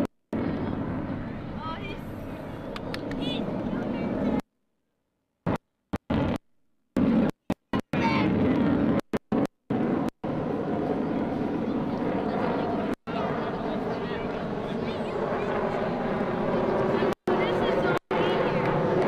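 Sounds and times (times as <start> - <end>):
jet engines in afterburner: 0.0 - 4.5, 5.4 - 19.0.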